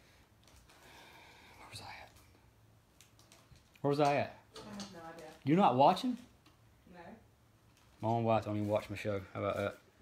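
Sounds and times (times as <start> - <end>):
faint whispered voice: 1.5 - 2.3.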